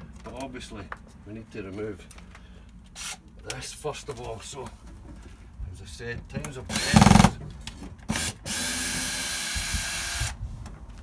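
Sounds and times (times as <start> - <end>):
cordless drill running: 6.7 - 7.3, 8.1 - 10.4.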